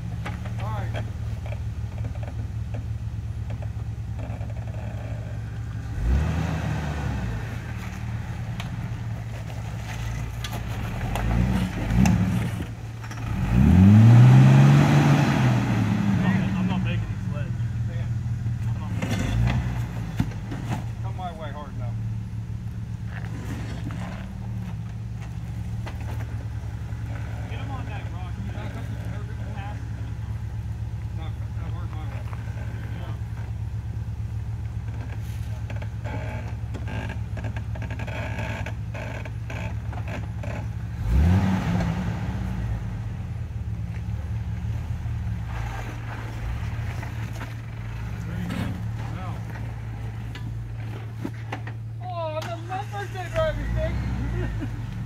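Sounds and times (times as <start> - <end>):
engine idling and revving: 0.0 - 55.0.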